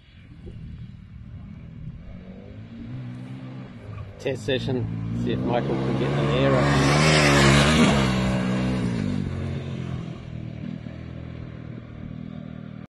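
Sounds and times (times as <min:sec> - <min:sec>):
motorcycle engine revving: 0:00.1 - 0:12.9.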